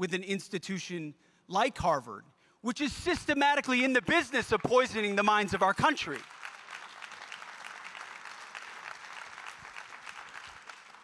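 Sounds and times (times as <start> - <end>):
audience applauding: 4.1 - 11.0.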